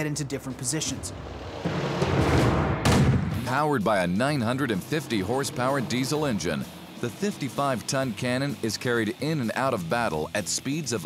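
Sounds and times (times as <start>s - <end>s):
noisy rumble: 0.4s - 10.6s.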